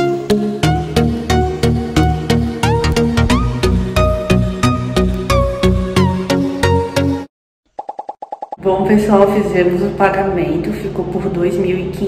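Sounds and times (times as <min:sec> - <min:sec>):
background music with plucked notes: 0:00.0 - 0:07.3.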